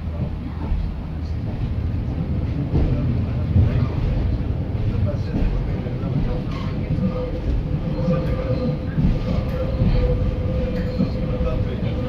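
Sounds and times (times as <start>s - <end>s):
diesel railbus engine rumble: 0.0s - 12.0s.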